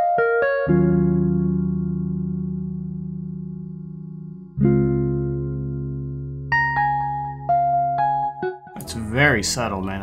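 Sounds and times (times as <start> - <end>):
strummed synth chords: 0.6 - 9.6.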